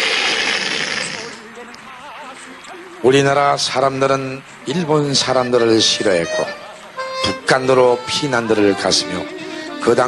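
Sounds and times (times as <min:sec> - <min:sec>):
loud burst of rushing noise: 0:00.0 - 0:01.4.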